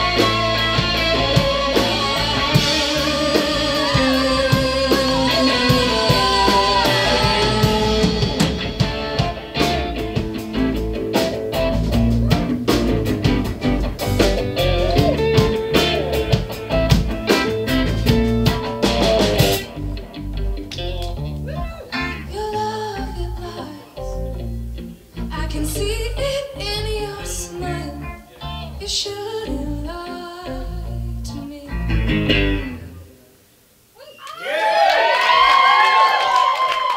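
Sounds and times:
drum kit: 0.0s - 22.7s
bass guitar: 0.0s - 33.3s
electric guitars: 0.0s - 33.4s
woman singing: 2.0s - 8.4s, 22.2s - 24.2s, 25.3s - 28.1s, 28.8s - 32.0s.

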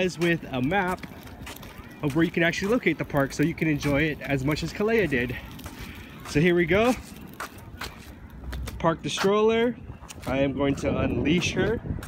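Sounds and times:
footsteps: 0.0s - 12.0s
stroller wheels rolling on concrete: 0.0s - 12.0s.

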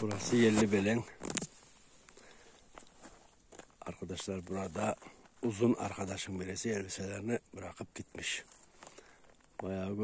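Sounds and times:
footsteps in dry grass: 0.0s - 6.8s.

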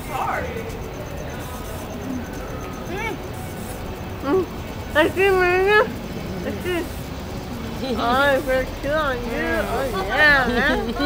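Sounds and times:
low rumble of city background: 0.0s - 11.0s.

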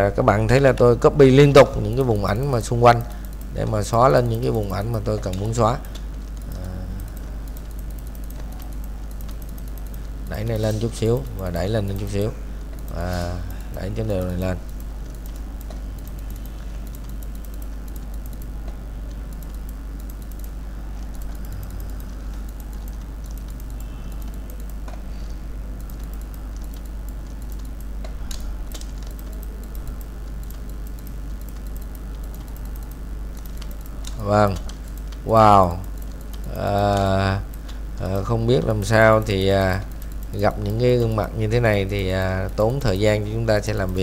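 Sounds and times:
low electrical hum: 0.0s - 44.0s
microphone hiss: 0.0s - 44.0s
computer mouse and keyboard clicks: 0.1s - 44.0s.

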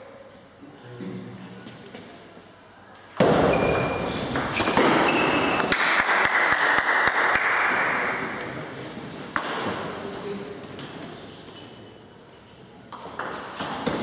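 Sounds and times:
table tennis ball hit: 3.2s - 8.0s, 9.3s - 9.9s
crowd clapping and cheering: 5.6s - 8.2s.

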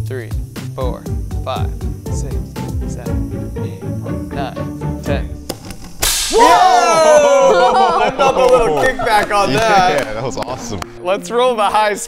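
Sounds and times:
background music: 0.0s - 12.0s
spark igniter clicking: 5.4s - 6.4s
gas igniting whoosh: 5.5s - 6.6s.

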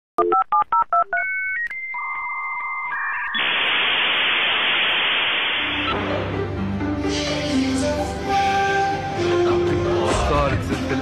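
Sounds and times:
touch-tone dialing beeps: 0.2s - 3.4s
loud modem hiss: 3.3s - 6.0s.

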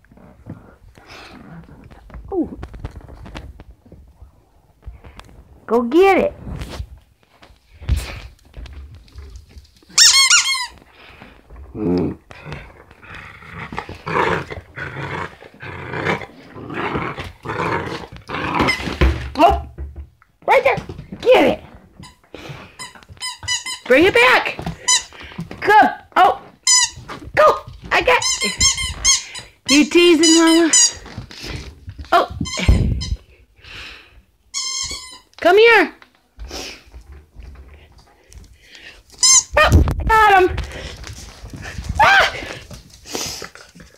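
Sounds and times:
soft rustle: 0.1s - 10.0s
rubber squeaky toy squeaking: 10.0s - 10.8s, 22.8s - 24.0s, 26.6s - 27.1s, 28.0s - 31.0s, 34.5s - 35.3s, 39.2s - 39.6s
dog growling: 11.6s - 18.9s.

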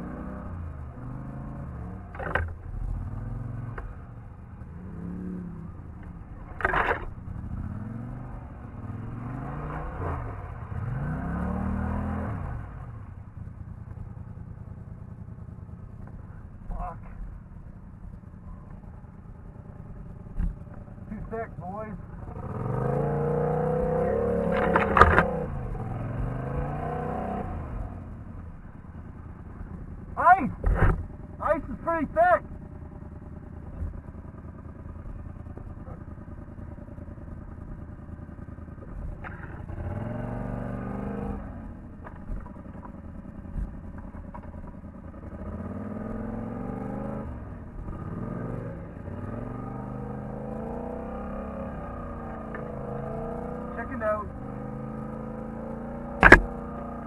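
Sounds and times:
atv engine revving: 0.0s - 57.0s.

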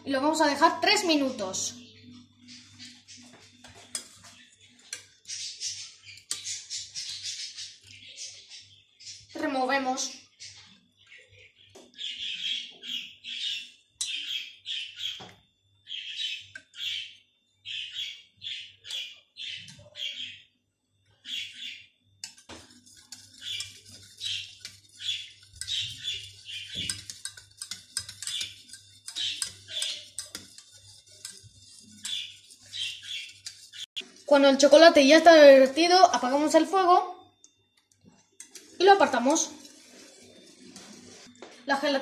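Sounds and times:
whisk scraping a metal saucepan: 2.4s - 8.3s, 22.2s - 36.6s, 38.1s - 41.3s.

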